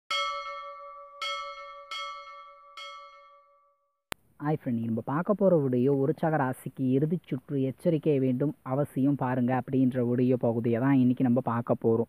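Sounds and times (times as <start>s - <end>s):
bell ringing: 0.1s - 3.9s.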